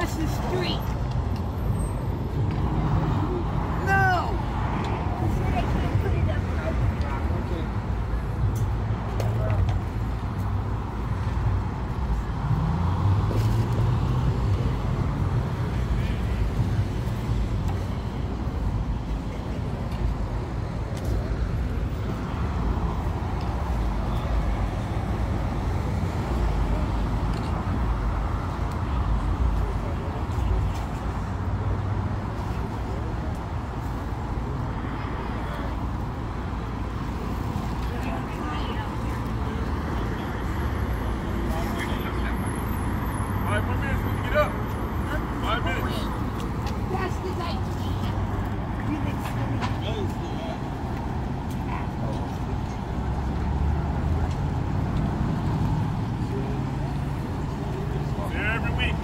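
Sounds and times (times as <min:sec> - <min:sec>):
street traffic noise: 0:00.0 - 0:59.0.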